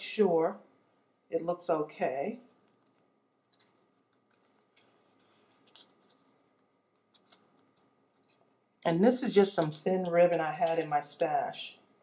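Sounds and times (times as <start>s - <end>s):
paper and ribbon rustling: 3.5s - 8.4s.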